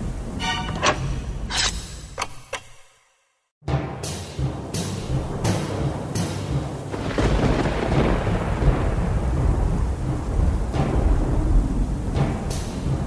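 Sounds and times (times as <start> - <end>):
steady rain: 0.0 - 0.4, 4.6 - 13.0
thunder rumbling: 0.0 - 0.4, 5.0 - 13.0
deep drum hits: 3.6 - 13.0.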